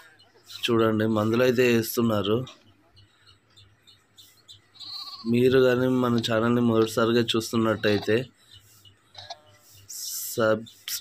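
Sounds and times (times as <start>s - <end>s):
goats bleating: 4.7s - 5.6s.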